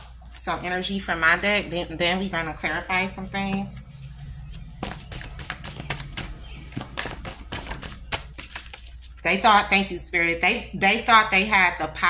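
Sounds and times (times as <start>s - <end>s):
playing cards being shuffled: 4.1s - 9.2s.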